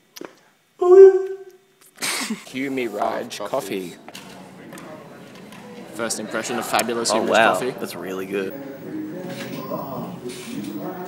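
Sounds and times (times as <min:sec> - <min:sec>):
low room noise: 0:00.0 - 0:11.0
faint background voices: 0:02.5 - 0:11.0.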